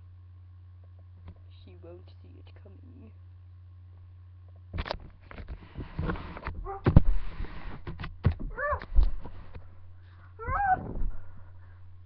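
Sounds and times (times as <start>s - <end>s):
knocks and bumps of movement: 4.5s - 12.0s.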